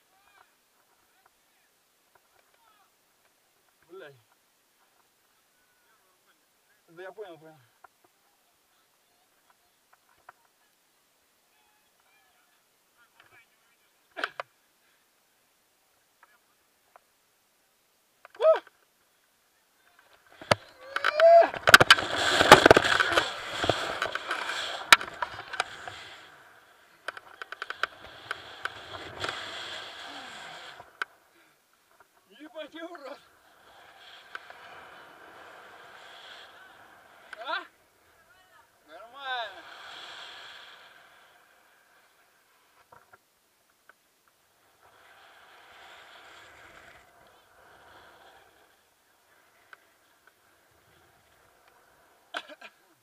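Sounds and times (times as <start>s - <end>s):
faint rush of air: 10.7s - 53.0s.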